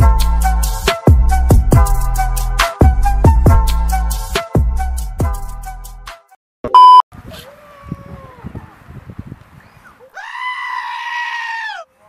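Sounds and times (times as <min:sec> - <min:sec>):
sheep bleating: 0:10.2 - 0:11.9.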